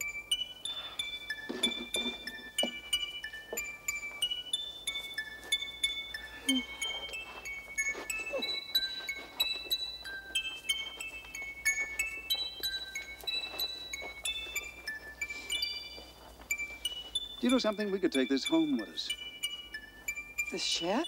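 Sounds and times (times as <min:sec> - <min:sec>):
music box playing slow tune: 0:00.0 - 0:21.0.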